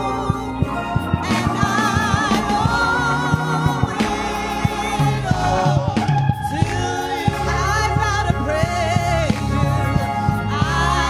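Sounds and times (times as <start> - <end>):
bass notes: 0.0 - 11.0
gospel singing with band: 0.0 - 11.0
drum strikes: 1.0 - 8.1.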